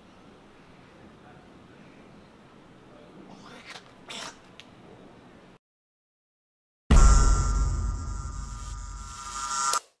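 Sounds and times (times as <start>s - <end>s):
electronic logo sting: 6.9s - 9.8s.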